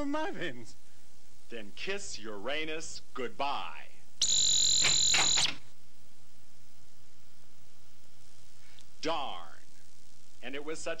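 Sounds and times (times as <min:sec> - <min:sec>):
faint tape hum: 0:00.0 - 0:11.0
electronic buzzing tones: 0:04.2 - 0:05.7.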